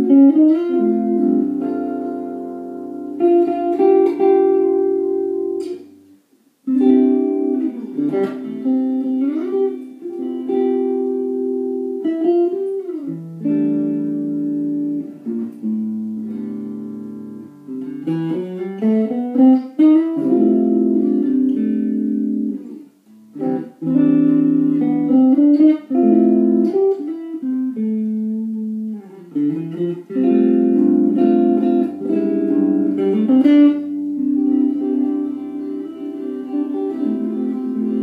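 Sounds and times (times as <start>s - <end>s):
electric guitar through amp: 0.0s - 38.0s.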